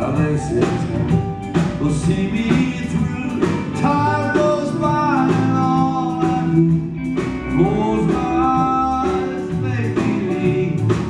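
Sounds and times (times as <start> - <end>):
country band playing live: 0.0 - 11.0
pedal steel guitar: 0.0 - 11.0.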